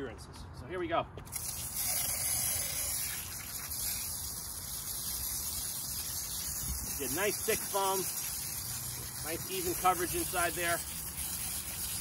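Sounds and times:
foam sprayer hissing: 1.3 - 12.0.

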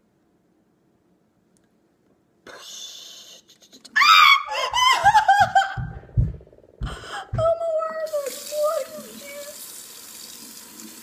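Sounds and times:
faucet running into sink: 8.1 - 11.0.

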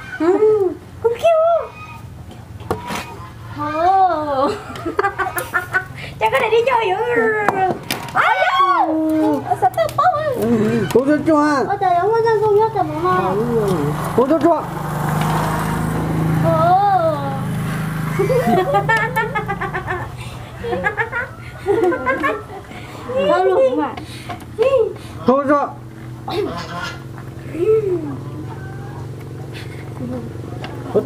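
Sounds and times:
group of people laughing: 4.3 - 6.2, 9.1 - 11.2, 18.0 - 23.5.

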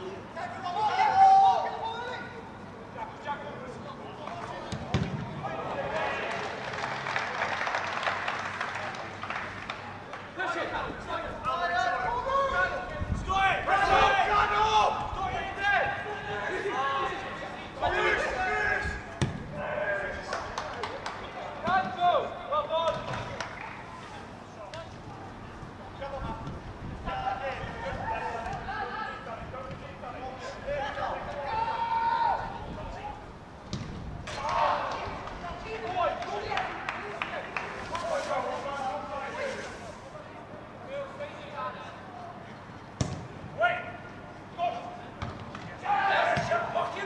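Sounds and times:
footballers shouting: 0.2 - 2.5, 10.4 - 23.8, 27.0 - 33.4, 34.2 - 37.8, 43.5 - 47.0.

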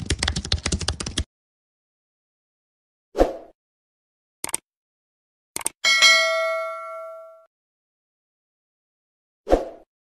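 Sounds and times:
notification bell ding: 5.8 - 7.5.

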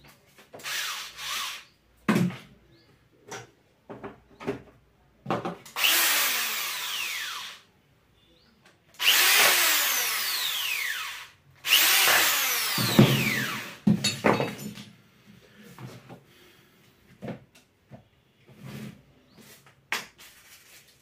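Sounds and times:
electric drill driving screws: 0.6 - 1.7, 5.7 - 7.6, 9.0 - 13.8.

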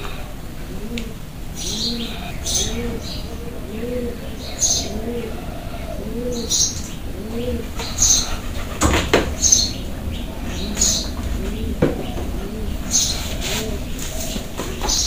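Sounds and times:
pigeon cooing: 0.0 - 15.0.

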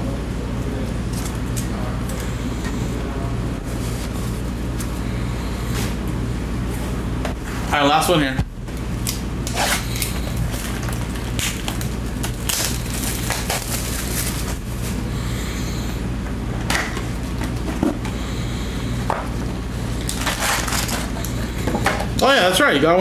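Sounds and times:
plastic wrap crinkling: 9.4 - 15.0, 20.0 - 21.5.

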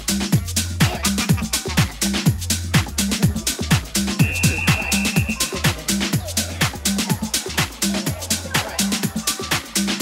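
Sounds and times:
held bass line: 0.0 - 8.8
crisp hi-hats: 0.0 - 10.0
kick drum beat: 0.8 - 7.9.

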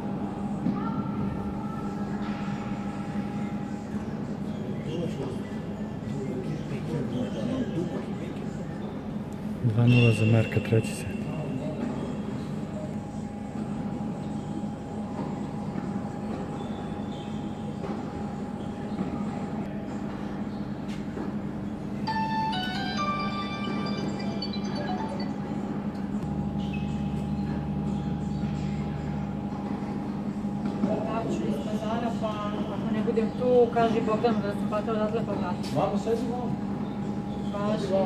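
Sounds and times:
steady mechanical hum: 0.0 - 38.0.

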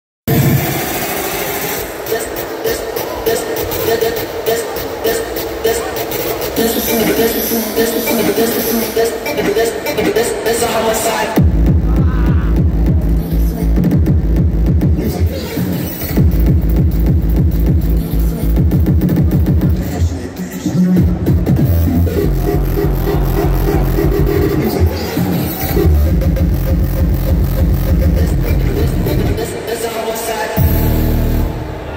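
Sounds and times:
loud hard-dance music: 0.3 - 31.9
falling-pitch bass notes: 21.4 - 25.0, 30.6 - 31.9.

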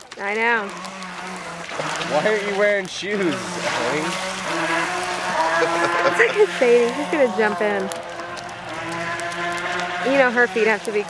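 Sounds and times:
small boat motor whining: 0.0 - 11.0.

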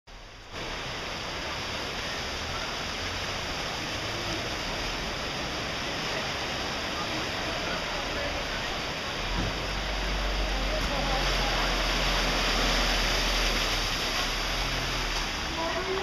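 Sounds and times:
floodwater rushing: 0.1 - 16.0.

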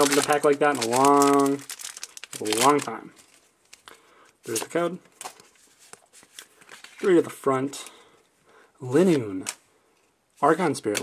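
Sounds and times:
trading cards being handled: 0.0 - 8.0.

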